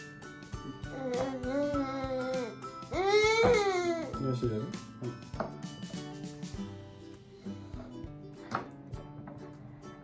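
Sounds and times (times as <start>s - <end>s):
children's background music: 0.0s - 10.0s
child crying: 0.9s - 4.2s.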